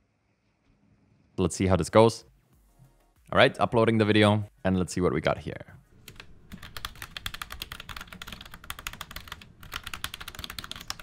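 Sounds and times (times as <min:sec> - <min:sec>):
low electronic static hum: 0:06.0 - 0:11.0.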